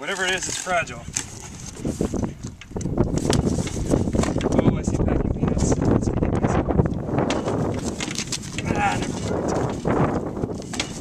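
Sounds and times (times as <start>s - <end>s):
cardboard box rustling and scraping: 0.1s - 2.3s, 3.1s - 4.5s, 7.2s - 11.0s.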